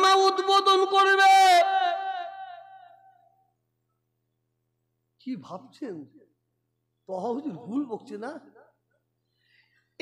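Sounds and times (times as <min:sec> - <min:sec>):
man speaking over microphone: 0:07.1 - 0:08.7.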